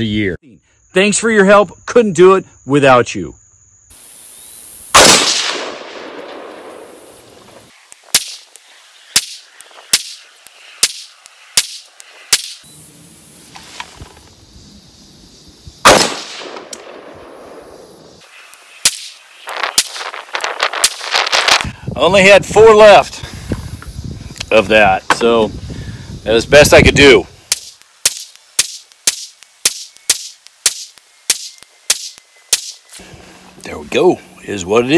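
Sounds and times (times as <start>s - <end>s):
loud rifle shots: 4.9s - 7.0s, 15.8s - 17.8s
quieter sharp cracks: 4.9s - 12.7s, 15.8s - 21.7s, 27.0s - 32.9s.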